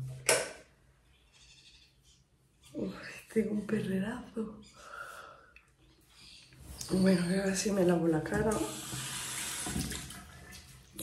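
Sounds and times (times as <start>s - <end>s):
tap water running into sink: 8.2s - 10.7s
face being washed: 8.5s - 11.0s.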